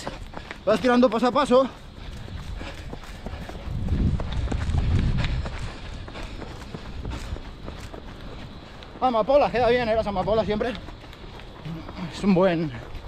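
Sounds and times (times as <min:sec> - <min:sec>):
running footfalls on dirt: 0:00.0 - 0:13.0
wind rumble on microphone: 0:01.8 - 0:12.1.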